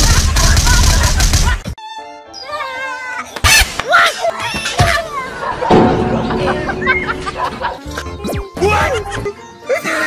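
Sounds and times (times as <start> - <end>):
music: 0.4 - 10.0.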